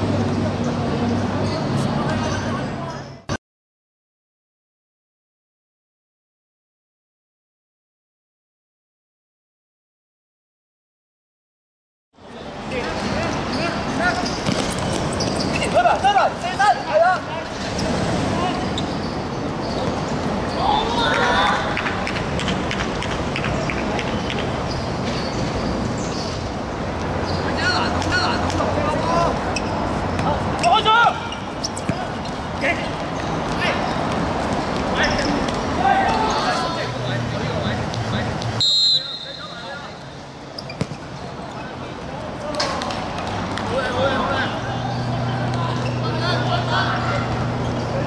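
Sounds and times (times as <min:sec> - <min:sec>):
players shouting: 0:20.5 - 0:21.9, 0:27.4 - 0:34.0, 0:34.9 - 0:38.2, 0:43.7 - 0:48.0
ball thudding off feet: 0:40.7 - 0:41.1.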